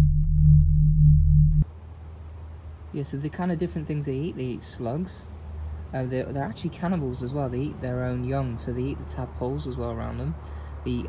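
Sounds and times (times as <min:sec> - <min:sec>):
low electronic drone: 0:00.0 - 0:01.7
faint background hiss: 0:01.6 - 0:11.0.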